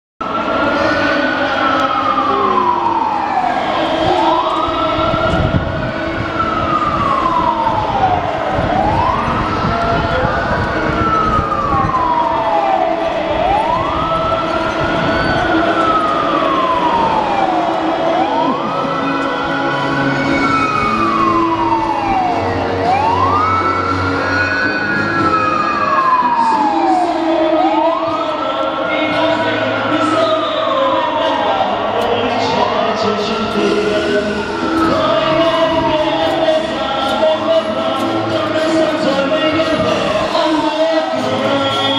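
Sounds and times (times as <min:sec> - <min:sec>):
toy fire truck siren wailing: 0:00.2 - 0:41.9.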